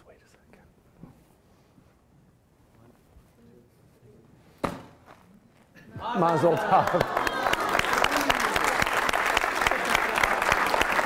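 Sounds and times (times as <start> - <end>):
faint whispering and murmured voices: 0.0 - 4.6.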